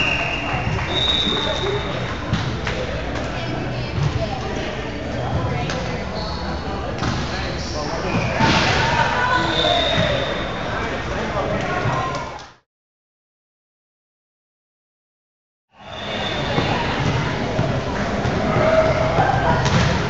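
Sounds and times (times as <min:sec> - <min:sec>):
players' voices and calls: 0:00.0 - 0:12.5, 0:15.8 - 0:20.0.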